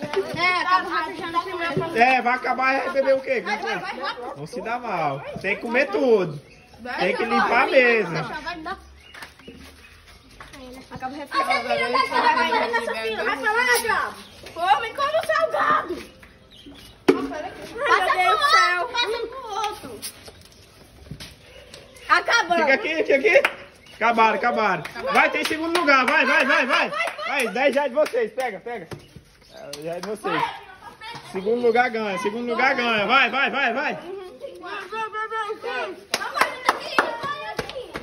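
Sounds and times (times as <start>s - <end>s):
excited shouting voices: 17.7s - 19.8s, 24.0s - 28.0s, 30.2s - 38.0s
sharp hand claps: 24.8s - 28.6s, 36.1s - 38.0s.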